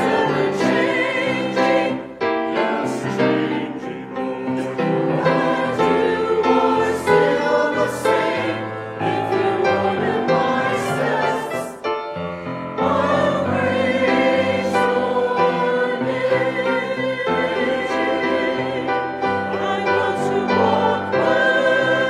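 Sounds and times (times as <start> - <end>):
church choir singing chords: 0.0 - 22.0.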